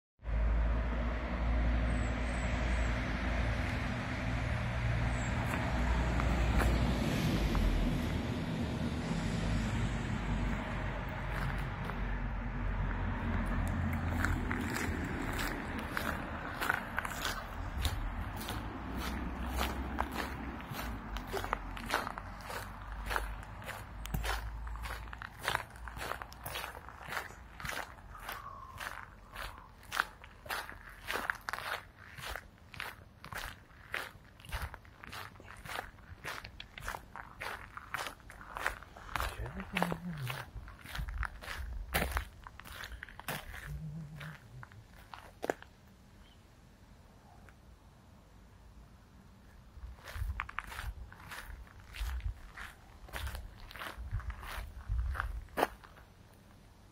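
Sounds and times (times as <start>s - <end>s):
footsteps on gravel: 5.3s - 7.7s, 10.5s - 45.8s, 49.8s - 56.1s.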